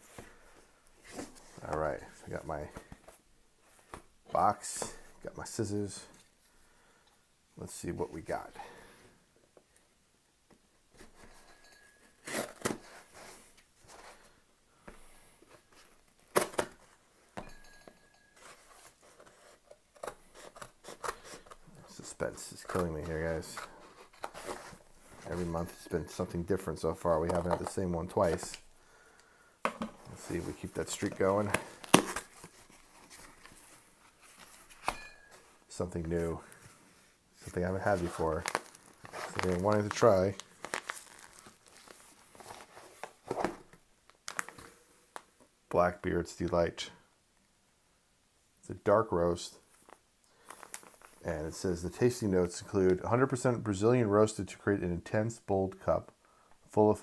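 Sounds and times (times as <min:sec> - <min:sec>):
cardboard packaging rustling: 0:18.3 - 0:28.7, 0:29.6 - 0:36.8, 0:37.4 - 0:44.7, 0:49.7 - 0:51.2
cardboard tearing: 0:31.5 - 0:32.7, 0:38.0 - 0:43.6.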